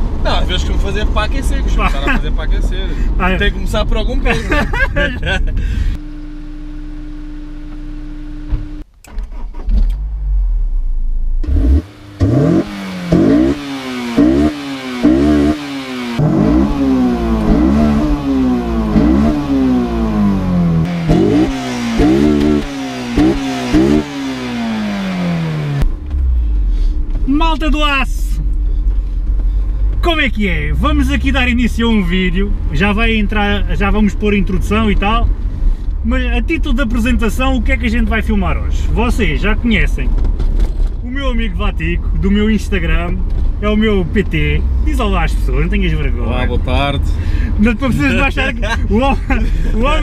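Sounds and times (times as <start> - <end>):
car engine revving: 5.9 - 27.2, 40.0 - 50.0
person speaking: 41.1 - 50.0.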